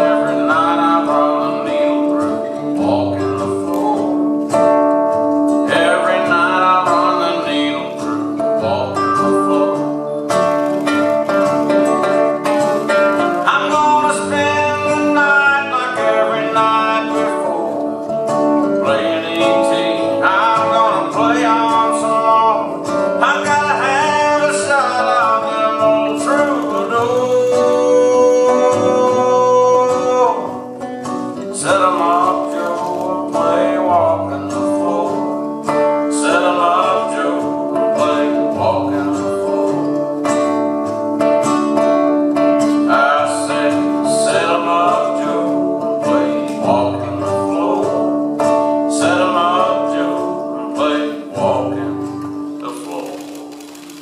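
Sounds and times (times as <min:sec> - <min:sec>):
acoustic guitars playing country: 0:00.0 - 0:54.0.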